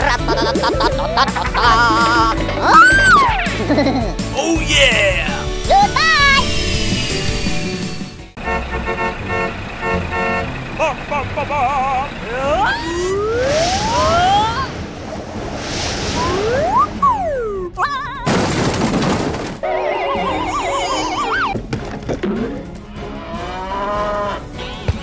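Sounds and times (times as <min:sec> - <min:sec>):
airy whooshes: 0:05.2 - 0:08.4, 0:12.6 - 0:17.8
hissing burst: 0:05.3 - 0:08.4, 0:12.8 - 0:17.5
warbling tones: 0:05.4 - 0:08.4, 0:12.5 - 0:17.8
sliding whistle-like tones: 0:05.9 - 0:08.2, 0:12.6 - 0:17.8
wobbling tones: 0:12.5 - 0:18.1.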